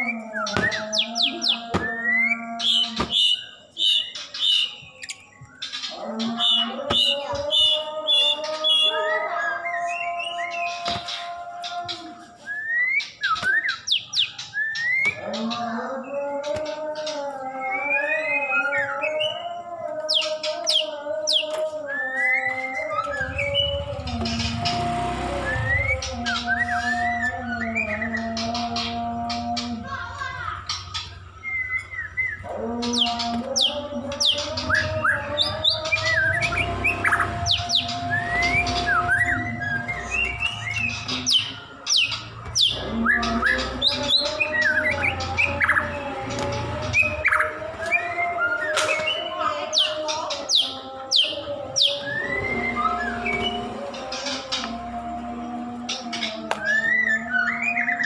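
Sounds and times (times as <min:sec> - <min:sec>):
bird singing whistles: 0:06.5 - 0:15.2, 0:20.1 - 0:23.8, 0:31.0 - 0:32.4, 0:47.0 - 0:53.7
wavering droning tone: 0:31.3 - 0:58.0.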